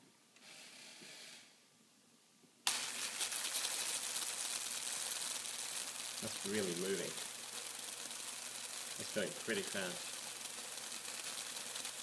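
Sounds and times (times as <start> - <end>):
electrical discharge hissing: 2.7 - 12.0.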